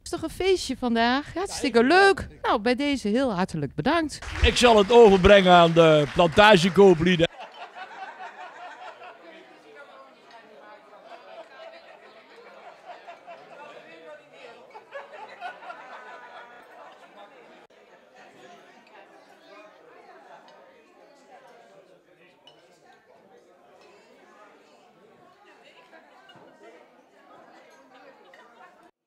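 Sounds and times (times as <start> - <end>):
chatter of many people: 4.2 - 28.9.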